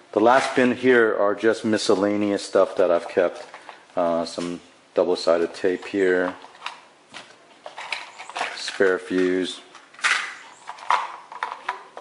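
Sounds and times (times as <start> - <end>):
small parts clicking and rattling: 7.6 - 12.0.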